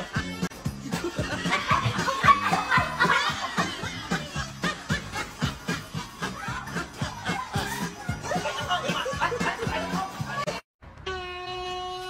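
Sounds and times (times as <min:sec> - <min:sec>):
laughter: 0:00.8 - 0:10.6.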